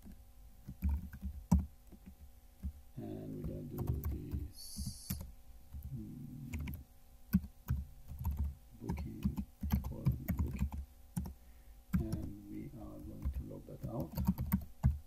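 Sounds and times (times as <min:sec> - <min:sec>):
low voice-like hum: 0:03.0 - 0:06.8, 0:08.7 - 0:10.7, 0:11.9 - 0:14.2.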